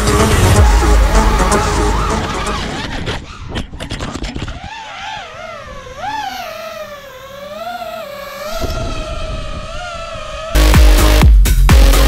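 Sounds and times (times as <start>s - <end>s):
quadcopter motors whining: 0.0s - 11.2s.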